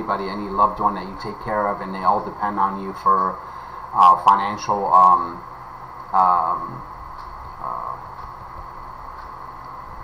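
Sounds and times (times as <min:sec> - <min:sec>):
low background hiss and hum: 0:00.0 - 0:10.0.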